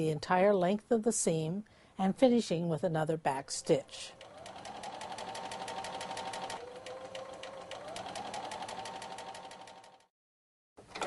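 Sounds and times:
sewing machine stitching: 3.7s - 10.1s.

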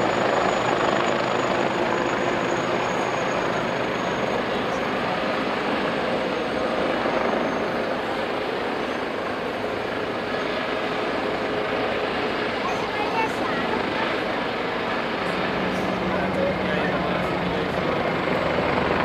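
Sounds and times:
helicopter engines and rotors: 0.0s - 19.0s.

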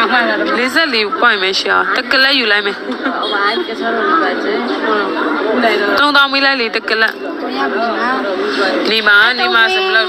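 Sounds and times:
overlapping chatter: 0.0s - 10.0s.

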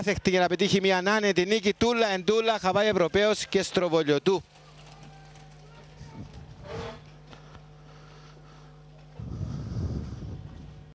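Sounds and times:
faint steady hum: 0.2s - 10.9s.

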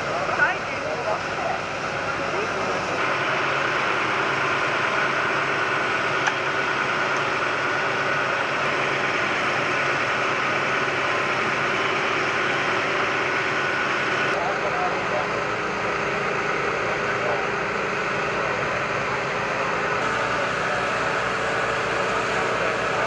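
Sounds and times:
pump engine humming: 0.0s - 23.0s.

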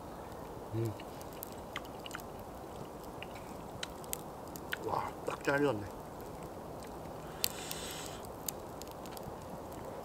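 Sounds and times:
low background hiss: 0.0s - 10.0s
person chewing food: 1.0s - 4.0s.

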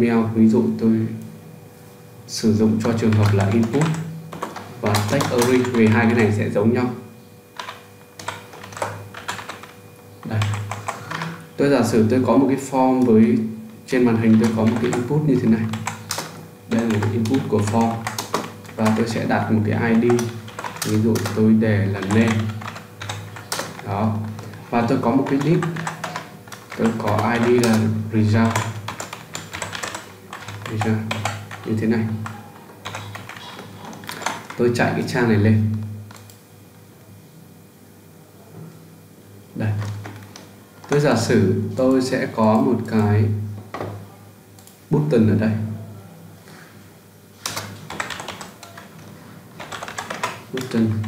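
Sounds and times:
computer keyboard typing: 2.6s - 6.5s, 7.6s - 13.4s, 14.0s - 36.4s, 39.7s - 41.3s, 47.4s - 51.0s.

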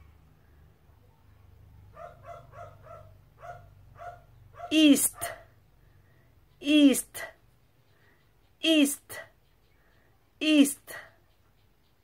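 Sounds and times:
small dog yapping: 2.0s - 5.4s
person speaking: 6.6s - 7.4s, 8.6s - 9.4s, 10.4s - 11.2s.

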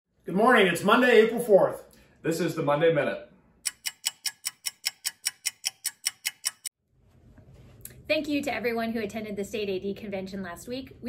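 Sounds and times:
clock ticking: 3.6s - 6.7s.

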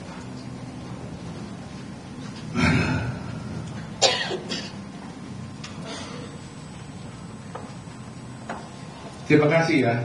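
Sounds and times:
person coughing: 2.6s - 3.2s, 4.0s - 4.8s, 5.8s - 6.4s.

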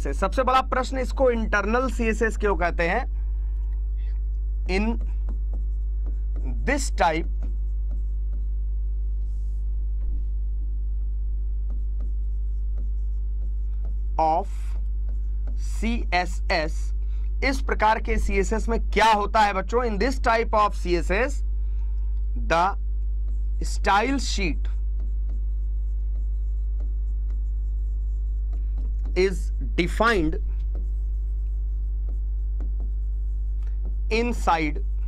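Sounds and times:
steady low hum: 0.0s - 35.0s
chalk scratching on chalkboard: 4.6s - 9.8s, 11.6s - 21.3s, 23.2s - 35.0s.

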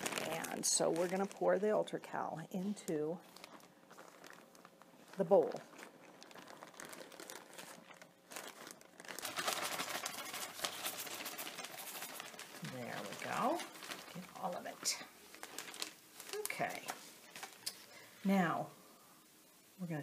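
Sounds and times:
plastic bag crinkling: 0.0s - 18.1s
powder pouring into plastic bowl: 5.7s - 14.5s.

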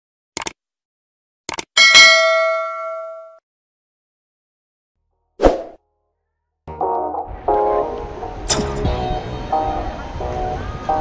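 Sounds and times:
quick click: 0.4s - 0.6s
notification bell ding: 1.8s - 3.4s.

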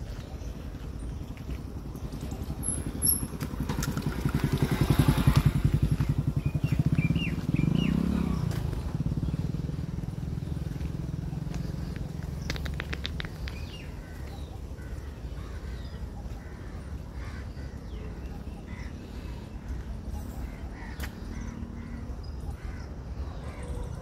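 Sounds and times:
vehicle engine running: 0.0s - 23.7s.

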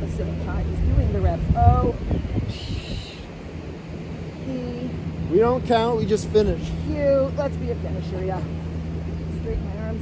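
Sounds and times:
wind noise on microphone: 0.0s - 4.9s.

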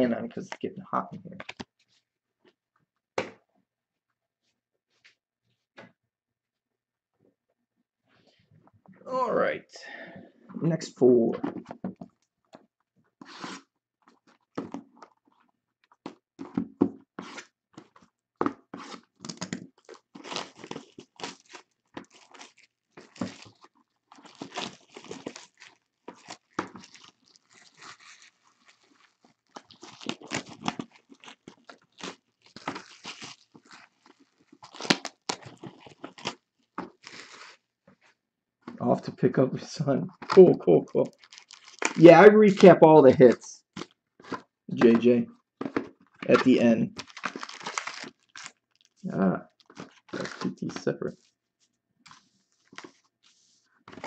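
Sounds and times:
plastic shrink-wrap crackling: 19.1s - 37.6s, 41.0s - 42.6s, 46.3s - 50.5s.

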